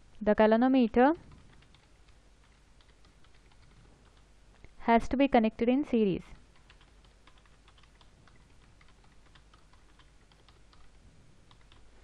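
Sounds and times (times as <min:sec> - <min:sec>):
keyboard typing: 0:01.3 - 0:04.7, 0:06.5 - 0:12.0.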